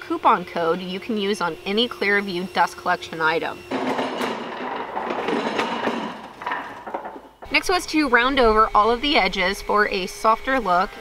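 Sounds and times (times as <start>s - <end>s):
boards clattering: 3.7s - 7.6s
workbench casters rolling on concrete: 3.7s - 7.9s.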